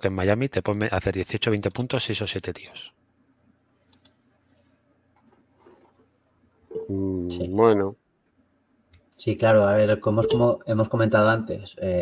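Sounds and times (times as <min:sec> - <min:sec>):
faint short clicks: 0:03.9 - 0:04.2
man speaking: 0:06.8 - 0:08.0, 0:09.2 - 0:12.0.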